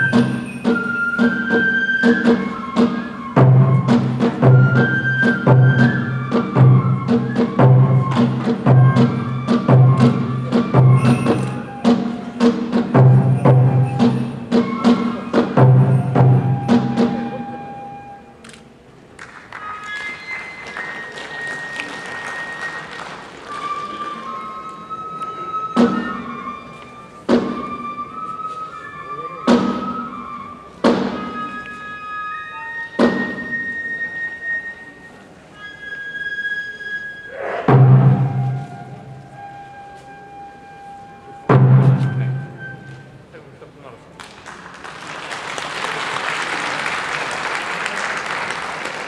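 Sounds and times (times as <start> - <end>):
sharp drum strokes: 0.0 - 17.5, 37.4 - 39.2, 41.5 - 43.1
bamboo flutes melody: 0.0 - 44.2.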